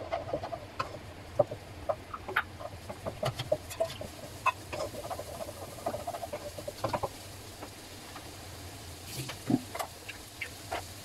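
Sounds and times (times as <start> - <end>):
spatula scraping and tapping wok: 0.0 - 8.3.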